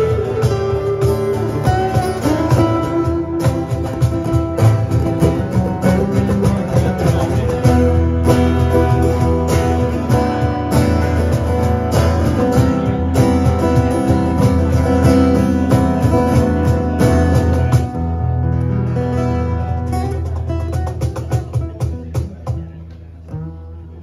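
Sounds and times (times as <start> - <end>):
acoustic guitars strummed: 0.0 - 24.0
cajon beat: 0.0 - 24.0.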